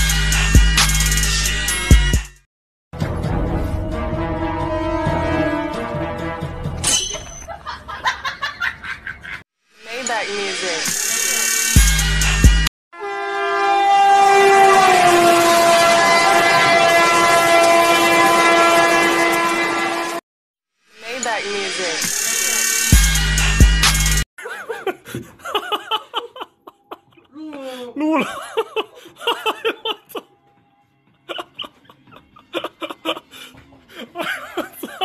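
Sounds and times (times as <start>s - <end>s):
train horn blast: 3.0s - 6.8s, 13.0s - 20.2s
person laughing in bursts: 7.5s - 9.4s, 24.4s - 27.4s, 28.0s - 30.3s, 31.2s - 35.0s.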